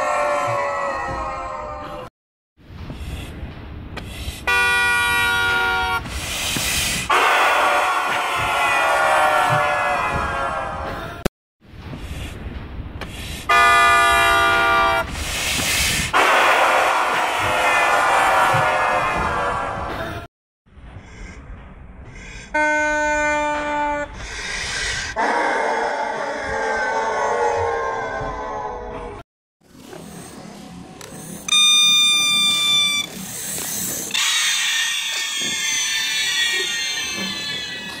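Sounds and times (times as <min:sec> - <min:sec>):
loud multi-tone horn blast: 0:04.5 - 0:06.0, 0:07.1 - 0:09.6, 0:13.5 - 0:15.1
high-pitched beep: 0:31.5 - 0:33.1
several high tones together: 0:31.5 - 0:33.1.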